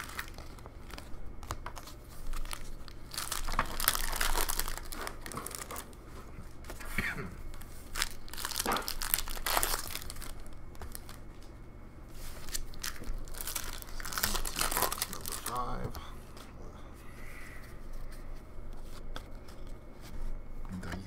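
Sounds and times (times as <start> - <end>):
foil wrappers crinkling and tearing: 0.0 - 6.0, 7.5 - 11.3, 12.3 - 16.1
cards being handled: 17.7 - 21.0.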